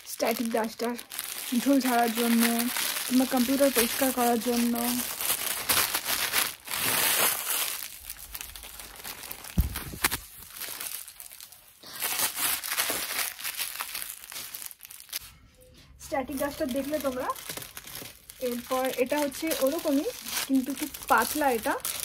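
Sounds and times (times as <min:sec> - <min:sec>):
duster crinkling and rustling: 0:01.6 - 0:11.1
low thump: 0:09.5 - 0:10.1.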